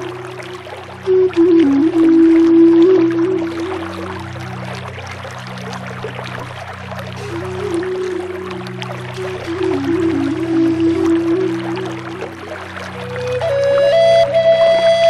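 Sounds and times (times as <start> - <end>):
flute playing slow melody: 0.0 - 4.7, 6.9 - 15.0
running creek water: 0.0 - 15.0.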